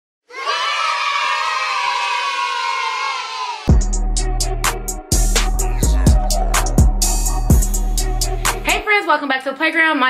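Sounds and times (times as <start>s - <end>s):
children shouting and cheering: 0.3s - 3.8s.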